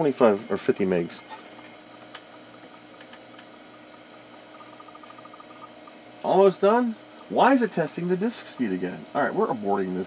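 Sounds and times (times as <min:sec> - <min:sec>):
hard drive hum: 0:00.0 - 0:10.0
hard drive heads clicking: 0:00.6 - 0:09.0
rapid ticks: 0:00.7 - 0:08.8.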